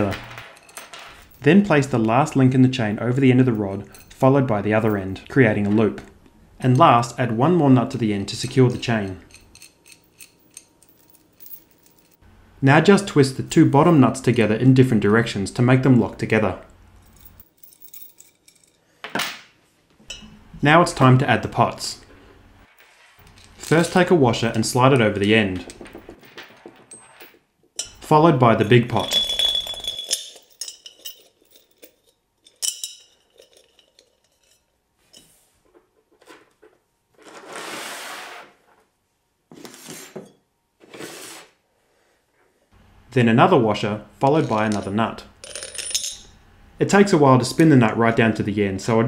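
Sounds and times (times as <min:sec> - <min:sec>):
small chain clinking: 0:00.0 - 0:01.5, 0:03.8 - 0:04.2, 0:08.5 - 0:12.2, 0:17.0 - 0:18.8, 0:23.2 - 0:35.3, 0:44.5 - 0:46.3
hardware scraping and rustling: 0:22.0 - 0:38.9.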